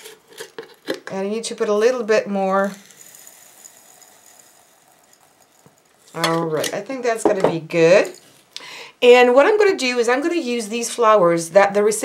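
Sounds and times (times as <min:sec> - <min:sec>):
bath salt pouring into glass jar: 0:02.4 - 0:06.2.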